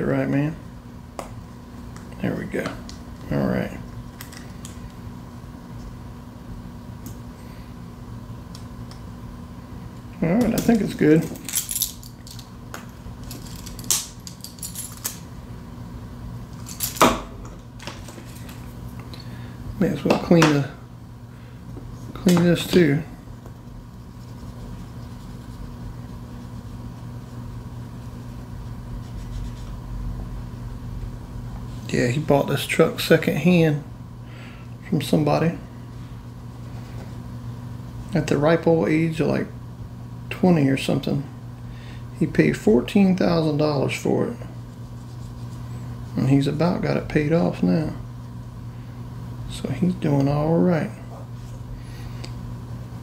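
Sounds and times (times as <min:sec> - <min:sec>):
low room hum: 0:00.0 - 0:53.0.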